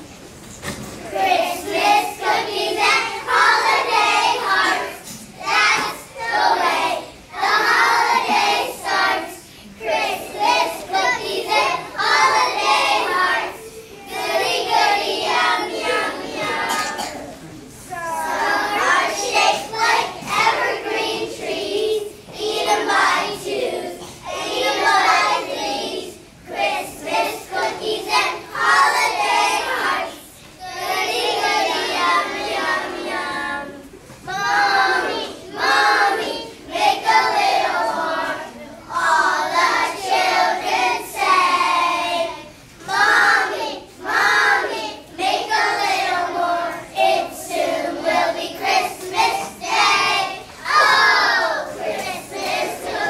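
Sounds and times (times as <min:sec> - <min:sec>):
young children singing: 0:00.0 - 0:53.0.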